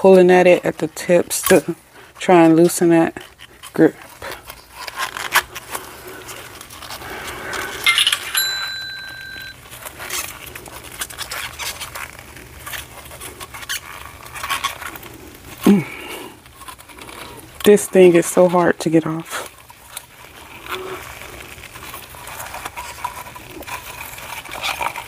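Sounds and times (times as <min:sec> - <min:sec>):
silicone mold creaking and rubbing: 0:00.0 - 0:25.0.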